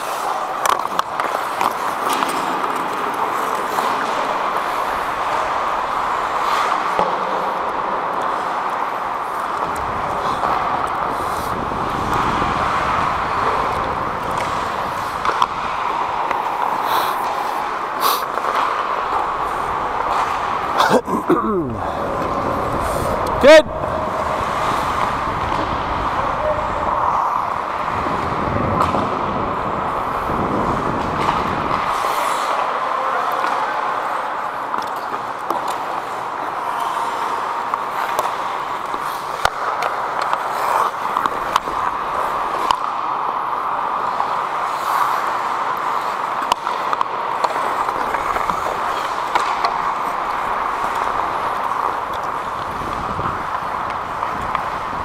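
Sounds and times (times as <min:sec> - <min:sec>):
hockey sticks and puck clicks: 0:00.0 - 0:55.0
skate blades scraping on ice: 0:00.0 - 0:55.0.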